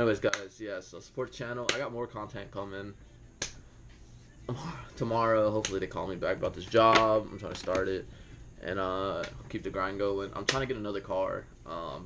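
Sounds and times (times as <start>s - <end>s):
man's voice murmuring: 4.5s - 5.1s.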